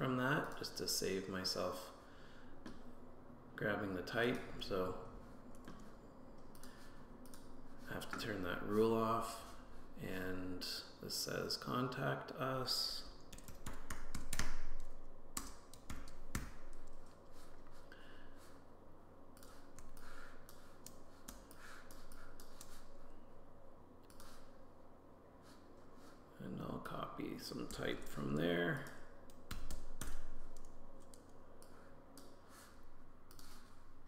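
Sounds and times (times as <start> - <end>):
typing on keyboard: 13.3 - 17.0.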